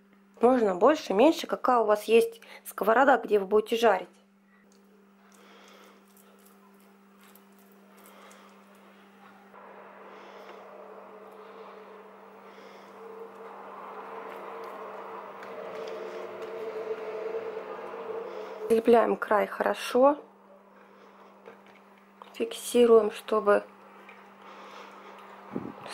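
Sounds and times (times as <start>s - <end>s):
low electrical hum: 0.0s - 25.9s
dough handling sounds: 5.7s - 9.2s
soft noise: 6.0s - 19.4s.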